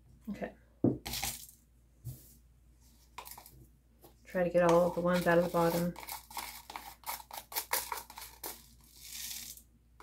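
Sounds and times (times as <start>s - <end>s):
crushed glass rattling in plastic cup: 5.1s - 9.6s.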